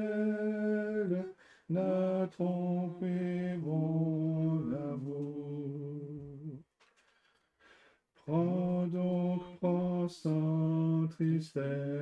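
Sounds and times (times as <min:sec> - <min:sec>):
hymn singing: 0:00.0 - 0:06.7, 0:08.2 - 0:12.0.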